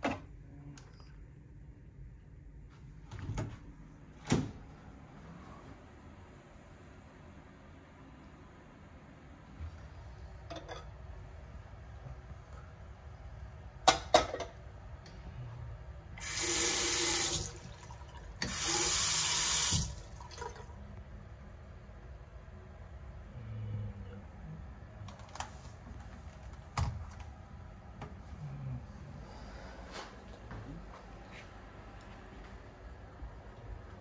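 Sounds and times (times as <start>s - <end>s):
faucet water running into sink: 16.2s - 20.7s.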